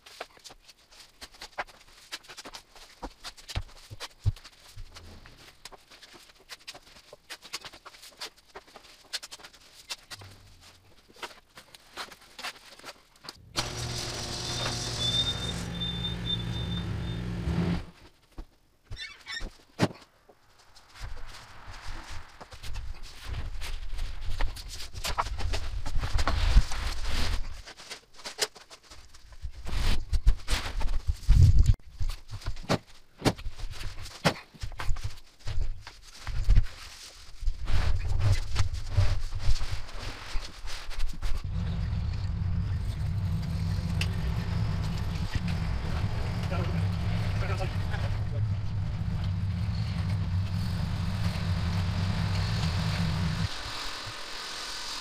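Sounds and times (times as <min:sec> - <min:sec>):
engine rumble: 0:13.4 - 0:18.0, 0:41.4 - 0:53.8.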